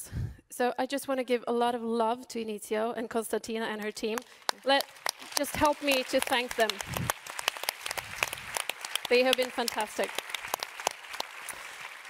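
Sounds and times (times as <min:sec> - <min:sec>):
audience applauding: 0:03.9 - 0:12.0.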